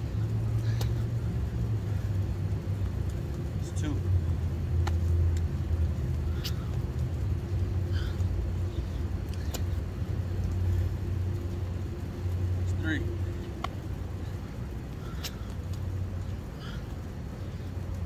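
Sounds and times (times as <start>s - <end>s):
low mechanical hum: 0.0s - 18.0s
man breathing: 7.8s - 9.5s.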